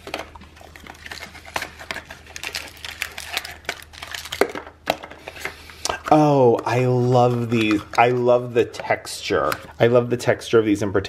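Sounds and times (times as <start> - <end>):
plastic wrapper crinkling: 0.0 - 8.5.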